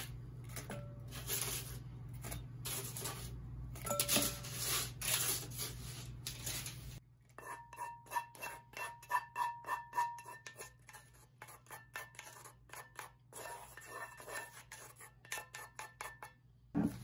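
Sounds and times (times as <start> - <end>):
wooden spoon scraping pan: 7.4 - 17.0.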